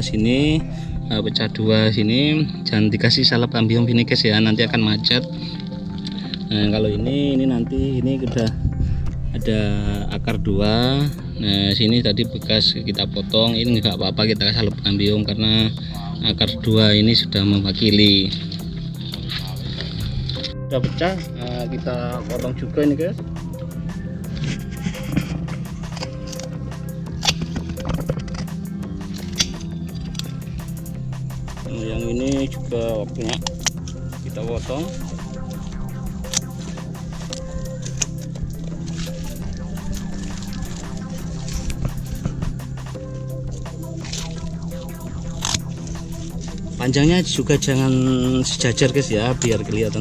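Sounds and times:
background music: 0.0s - 50.0s
scissors snipping root: 29.1s - 30.4s, 33.3s - 34.0s, 36.2s - 42.3s, 43.5s - 46.6s.

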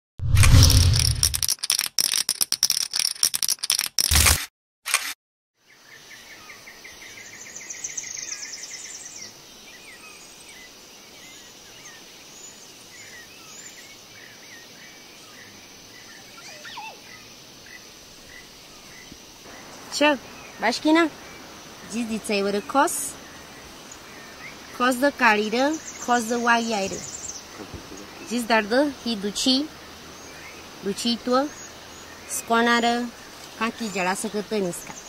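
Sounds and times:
rapid clicking and rattling: 0.8s - 4.4s
bird chirping: 12.5s - 35.0s.

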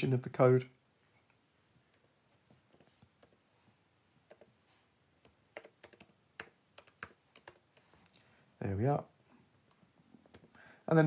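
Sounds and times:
typing on keyboard: 2.7s - 3.4s, 4.3s - 4.5s, 5.2s - 7.9s, 10.2s - 10.6s.

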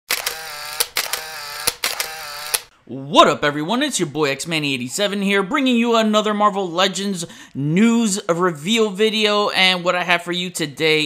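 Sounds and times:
buzzing mechanical whir: 0.1s - 2.7s
mechanical clicks: 0.1s - 2.7s.

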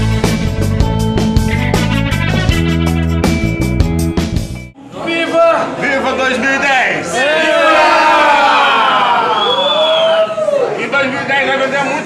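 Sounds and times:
people cheering with long shouts: 7.2s - 10.9s.

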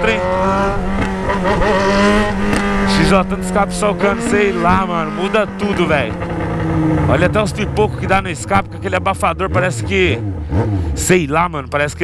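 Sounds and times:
loud motorcycle engine: 0.0s - 12.0s.

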